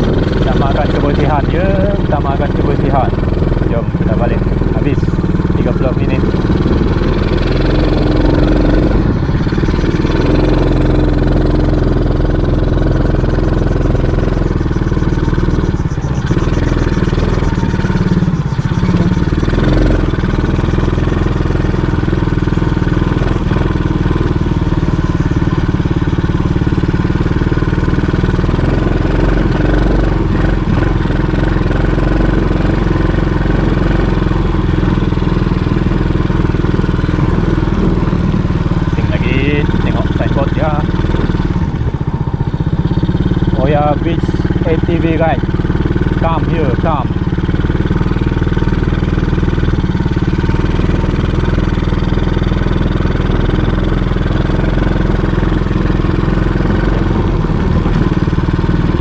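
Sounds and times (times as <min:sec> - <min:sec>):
quad bike engine running: 0:00.0 - 0:59.0.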